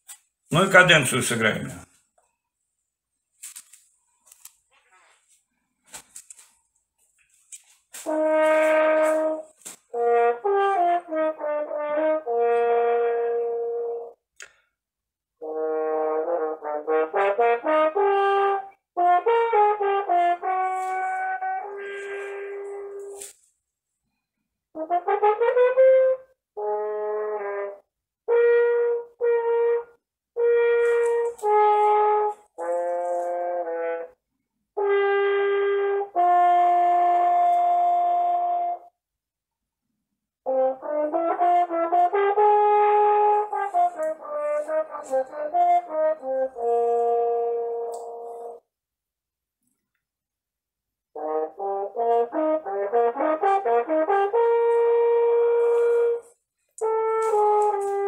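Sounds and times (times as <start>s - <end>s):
solo french horn playing: 8.0s - 14.2s, 15.4s - 23.4s, 24.8s - 34.2s, 34.8s - 38.9s, 40.5s - 48.6s, 51.2s - 58.0s.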